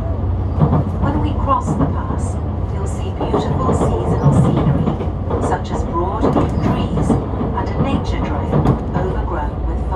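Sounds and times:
railcar wheels and engine rumble: 0.0s - 9.9s.

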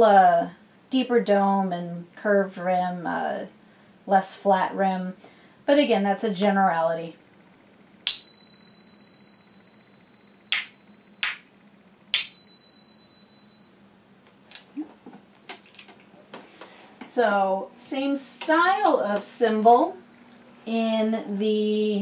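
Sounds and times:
finger cymbal clangs: 8.1s - 11.5s, 12.2s - 13.8s
finger cymbals ringing: 8.1s - 11.5s, 12.2s - 13.8s.

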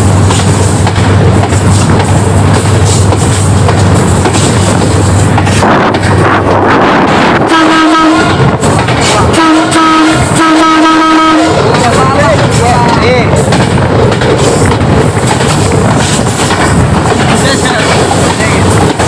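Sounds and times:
train rumbling on track: 0.0s - 19.0s
train horn blasts: 7.3s - 8.6s, 9.3s - 11.8s.

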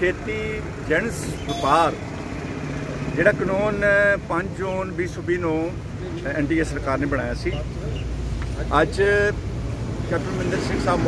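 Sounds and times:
man speaking: 0.0s - 2.1s, 3.1s - 8.0s.

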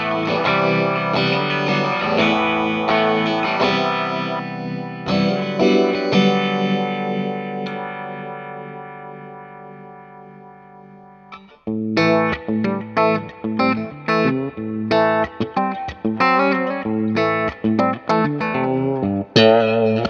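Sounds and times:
electric guitar riff chopped chords: 0.0s - 20.0s
electric guitar with phaser: 0.0s - 20.0s.

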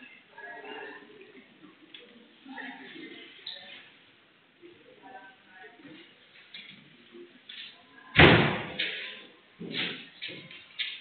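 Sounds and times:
loud bang with room echo: 8.2s - 9.1s.

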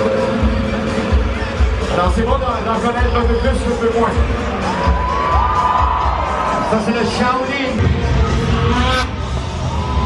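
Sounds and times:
snowmobile engine rumbling: 7.8s - 10.0s.

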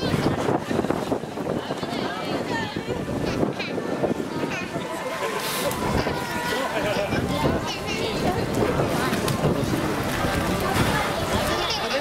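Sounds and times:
indistinct voices: 1.4s - 12.0s.

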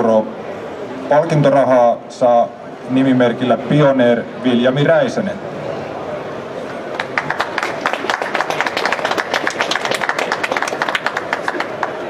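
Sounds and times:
small group applauding: 6.9s - 12.0s.

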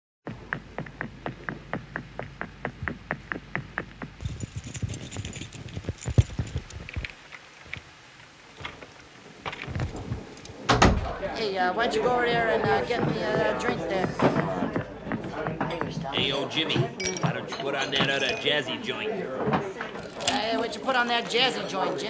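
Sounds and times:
jazzy house music: 0.3s - 4.2s
fast even tapping: 0.3s - 5.0s
clatter and hiss: 3.5s - 10.6s.

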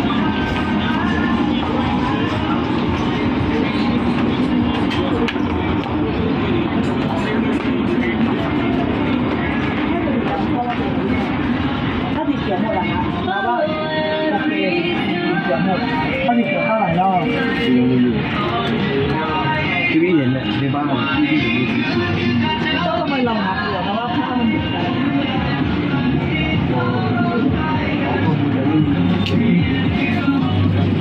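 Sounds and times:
background music: 0.0s - 31.0s
indistinct chatter: 0.0s - 31.0s.

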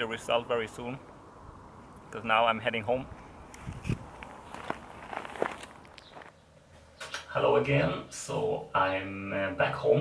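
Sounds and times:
footsteps on gravel: 3.6s - 6.4s.

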